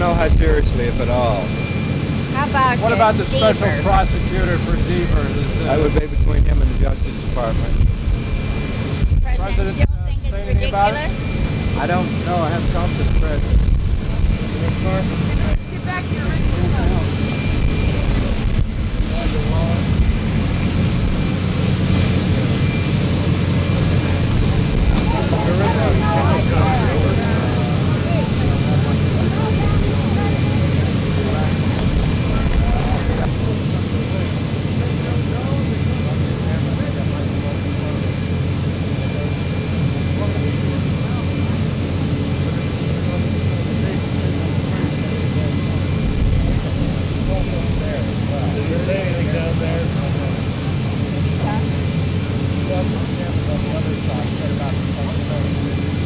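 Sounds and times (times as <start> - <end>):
aircraft engines droning: 0.0 - 56.0
crowd chatter: 0.0 - 56.0.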